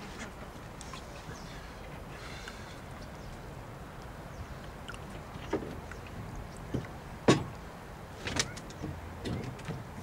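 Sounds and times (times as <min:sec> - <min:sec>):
knocks on boat hull: 0:06.7 - 0:07.5.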